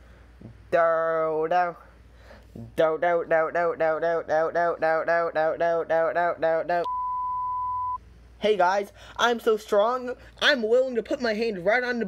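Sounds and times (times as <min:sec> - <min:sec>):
looped vocal syllable: 0:00.4 - 0:06.9
censor beep tone: 0:06.8 - 0:08.0.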